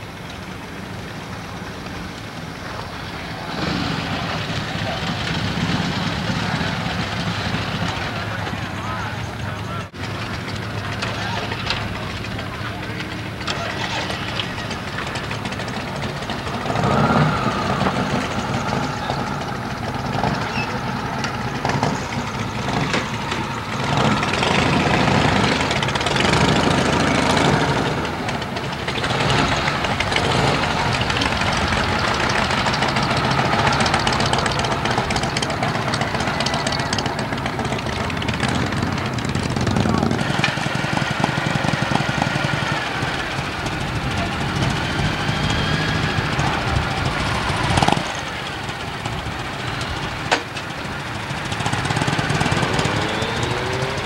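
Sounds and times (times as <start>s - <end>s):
indistinct voices: 0.0s - 54.0s
motorcycle engines running: 0.0s - 54.0s.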